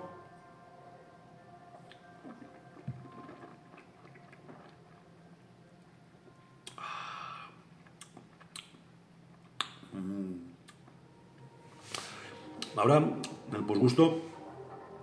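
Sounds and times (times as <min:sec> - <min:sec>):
wet mouth clicks and smacks: 0:06.6 - 0:06.8, 0:07.8 - 0:09.9, 0:10.6 - 0:10.8.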